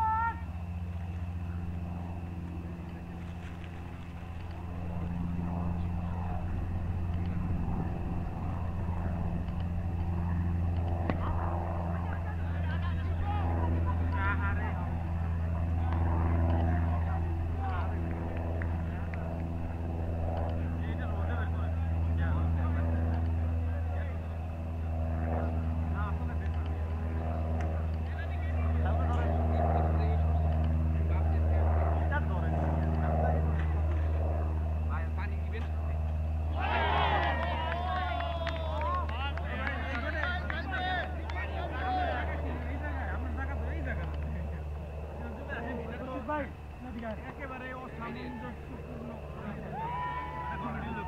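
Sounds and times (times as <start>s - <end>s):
distant voices calling: 0.0s - 31.2s
low engine-like hum: 0.0s - 51.0s.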